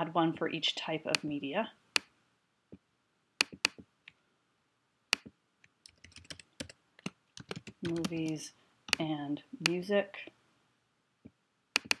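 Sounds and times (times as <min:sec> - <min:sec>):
mouse clicks: 0:11.8 - 0:12.0.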